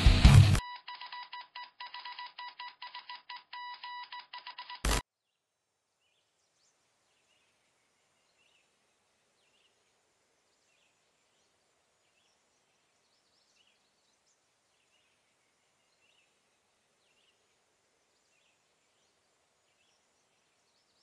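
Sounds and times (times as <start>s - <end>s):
heavy metal music: 0.0s - 0.6s
electronic alarm beeping: 0.6s - 5.0s.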